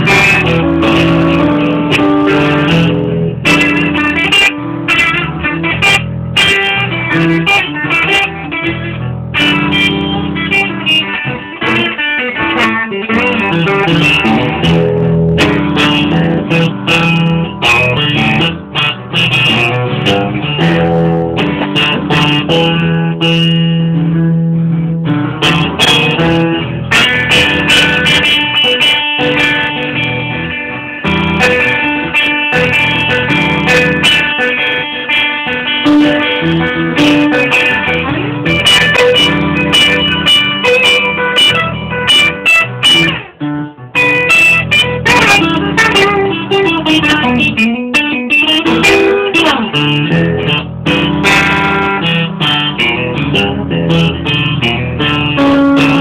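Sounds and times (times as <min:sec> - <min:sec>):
guitar playing: 0:00.0 - 0:56.0.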